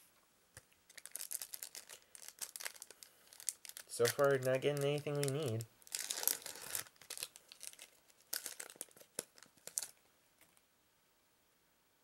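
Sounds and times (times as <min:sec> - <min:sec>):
foil wrapper crinkling and tearing: 0:00.9 - 0:10.0.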